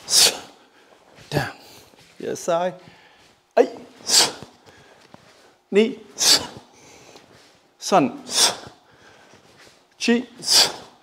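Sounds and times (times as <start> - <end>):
sharp hissing exhale: 8.3 - 8.8, 10.4 - 11.0
man counting aloud: 10.0 - 10.9.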